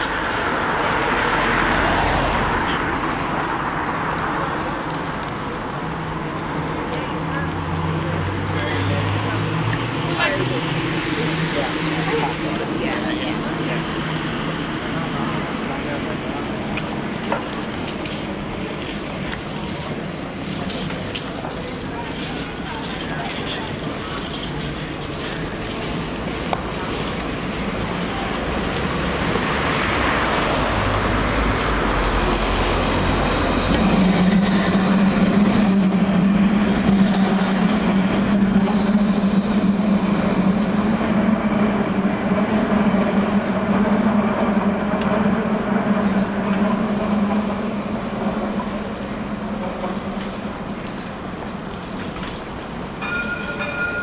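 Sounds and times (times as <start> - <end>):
street traffic: 0.0 - 54.0.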